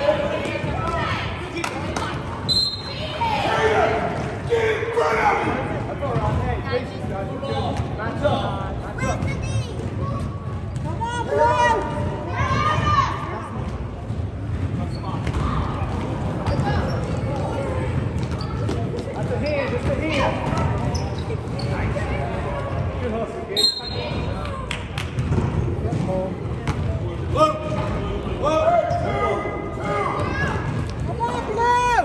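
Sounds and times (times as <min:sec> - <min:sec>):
players and spectators chattering: 0:00.0 - 0:32.0
basketball bouncing on gym floor: 0:13.6 - 0:21.9.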